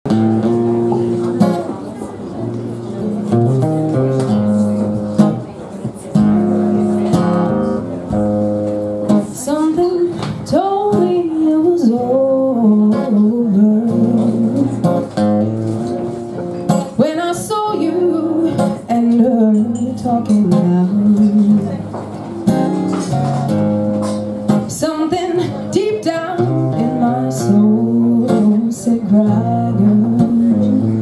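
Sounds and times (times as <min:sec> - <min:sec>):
acoustic guitar chords: 0:00.1 - 0:31.0
woman singing: 0:09.4 - 0:14.9, 0:17.0 - 0:21.8, 0:24.7 - 0:31.0.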